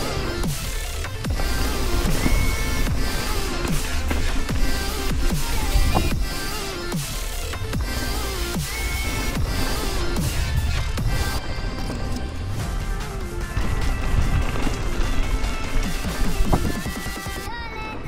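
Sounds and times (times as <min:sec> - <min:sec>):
electronic music with synths: 0:00.0 - 0:17.6.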